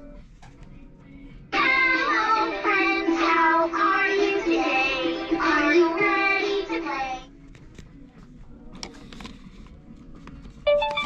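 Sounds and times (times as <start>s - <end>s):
toy playing children's song: 1.6s - 7.3s, 10.7s - 11.0s.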